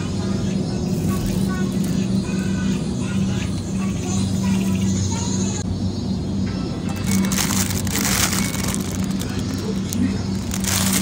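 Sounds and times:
steady low hum: 0.0s - 11.0s
plastic bag crinkling: 7.0s - 11.0s.

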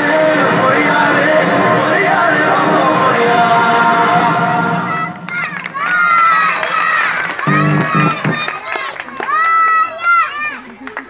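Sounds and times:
children shouting: 4.2s - 11.0s.

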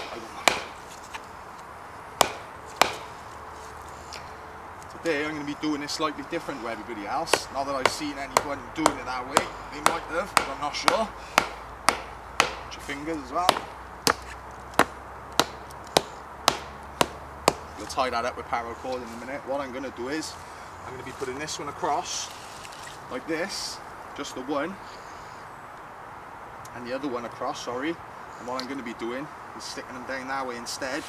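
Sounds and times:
mallet knocking wooden stake: 0.0s - 0.8s, 2.2s - 3.1s, 7.3s - 17.7s.

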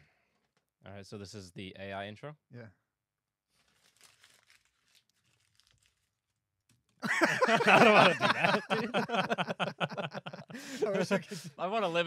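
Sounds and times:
paper rustling and crinkling: 3.5s - 7.0s.

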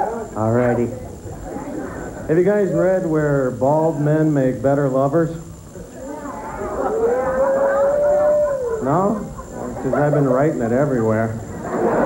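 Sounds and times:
audience voices: 0.0s - 2.6s
audience member whooping: 6.8s - 8.8s.

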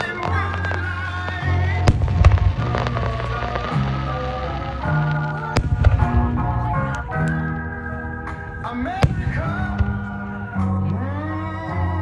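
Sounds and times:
firework shells cracking: 0.0s - 7.4s.

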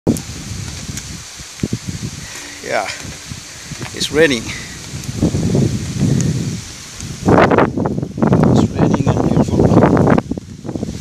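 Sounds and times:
wind and rain on microphone: 0.1s - 11.0s.

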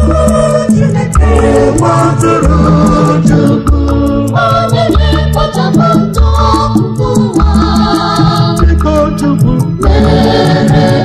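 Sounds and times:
choir singing over beat and bass: 0.0s - 11.0s.

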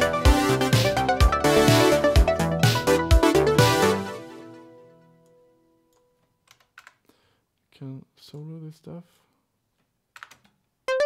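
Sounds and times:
man talking: 7.7s - 9.3s
computer clicks: 10.2s - 10.6s.

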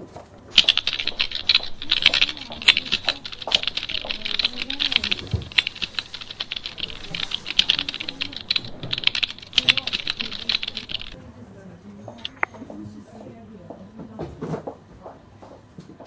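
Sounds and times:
fast typing on keyboard: 0.5s - 11.2s, 12.2s - 12.5s.

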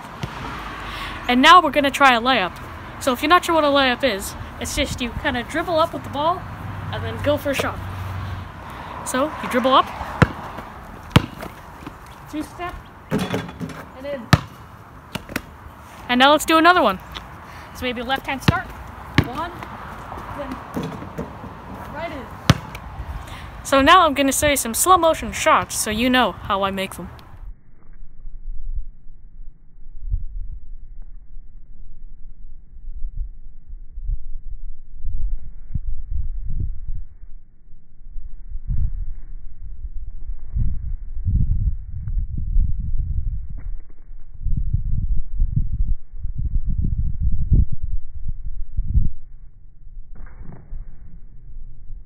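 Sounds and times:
deep drawn-out thumps: 10.1s - 12.0s
low rumble: 27.1s - 52.0s.

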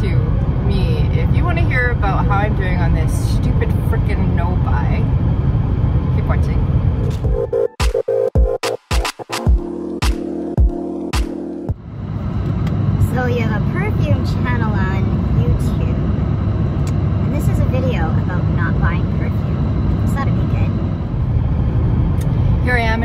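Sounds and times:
car cabin road and engine rumble: 0.0s - 7.5s, 11.7s - 23.0s
electronic intro music: 7.1s - 11.8s.

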